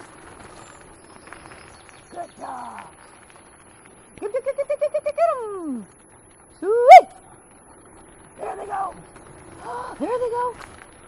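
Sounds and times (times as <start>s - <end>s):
dogs running footfalls: 0.0s - 11.0s
wheels rolling over gravel: 0.0s - 11.0s.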